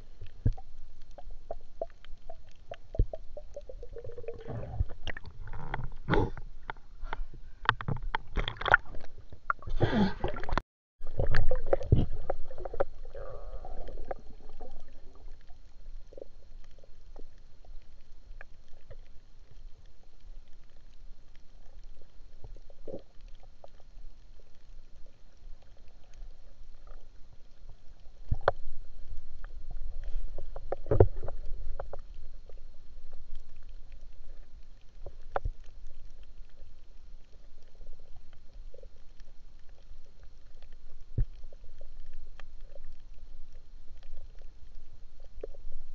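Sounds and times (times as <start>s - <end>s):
low water rumble: 0.0s - 45.9s
faint scattered clicks: 13.9s - 45.9s.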